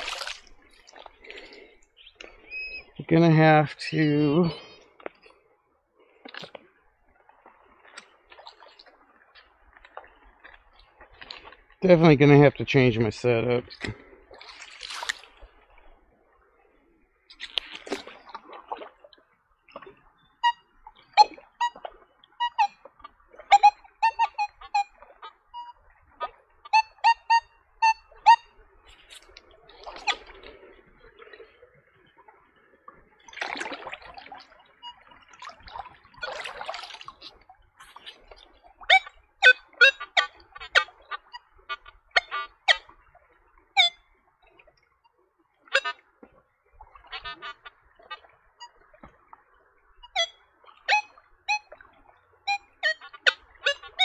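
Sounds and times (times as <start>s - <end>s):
water swishing: 0.0s - 54.0s
metal detector beeps: 2.5s - 3.0s, 20.4s - 22.8s, 23.5s - 25.8s, 26.7s - 28.6s, 38.9s - 42.8s, 43.8s - 44.0s, 45.7s - 46.0s, 50.0s - 51.7s, 52.4s - 54.0s.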